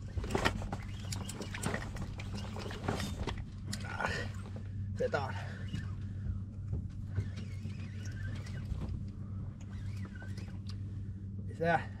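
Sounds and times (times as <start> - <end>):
boat engine idling: 0.0 - 12.0.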